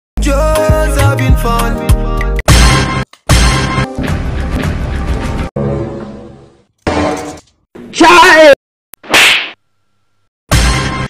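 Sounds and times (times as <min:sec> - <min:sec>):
sharp whip-like swish: 0:09.0 - 0:09.6.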